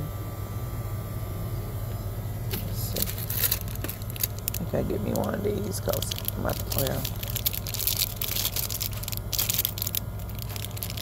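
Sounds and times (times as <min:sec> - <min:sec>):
low steady hum: 0:00.0 - 0:11.0
plastic packaging crinkling: 0:02.6 - 0:11.0.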